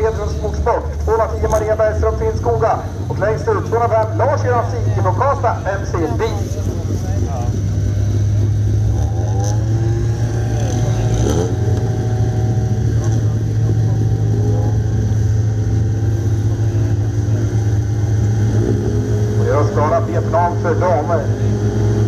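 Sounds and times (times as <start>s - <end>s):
car engines idling and revving: 0.0s - 22.0s.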